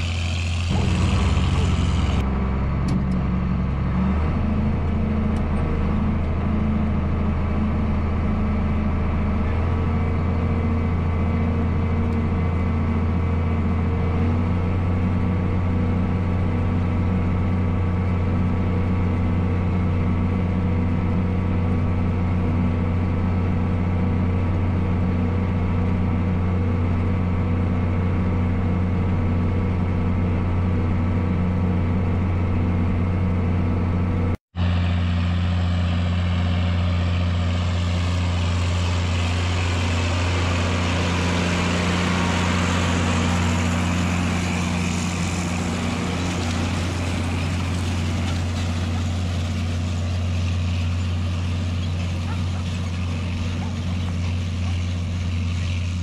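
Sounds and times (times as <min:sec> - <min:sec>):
hiss of tyres and drill: 0:00.0 - 0:02.2
tractor diesel engine running: 0:00.0 - 0:56.0.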